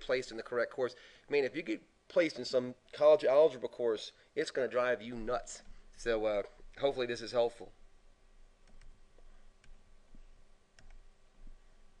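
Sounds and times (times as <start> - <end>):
faint computer clicks: 8.6 - 9.8.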